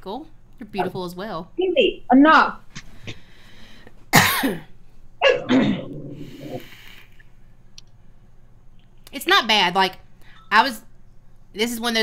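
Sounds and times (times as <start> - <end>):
woman coughing: 4.1 - 5.9
breathy vape draws and exhales: 6.1 - 7.2.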